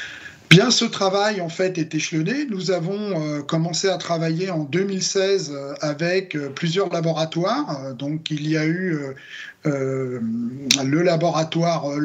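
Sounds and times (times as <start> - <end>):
man speaking hesitantly: 0.5 - 12.0.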